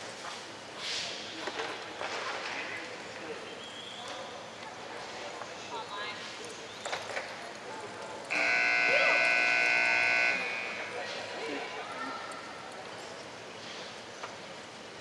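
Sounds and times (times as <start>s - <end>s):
electronic buzzer tone: 8.3s - 10.9s.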